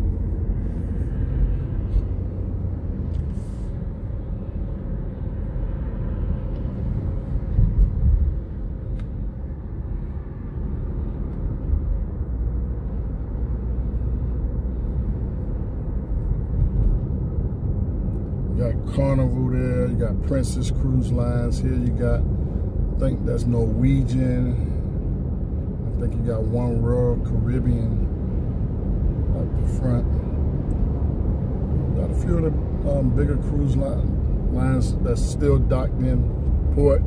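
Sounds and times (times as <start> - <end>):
car interior road rumble: 0.0 - 37.0.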